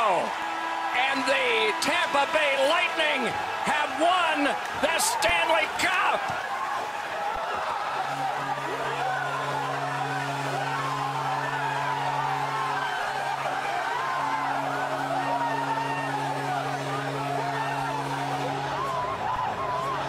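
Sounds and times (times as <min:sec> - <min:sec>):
players shouting and cheering: 0:00.0 - 0:20.0
low droning chord: 0:08.0 - 0:19.2.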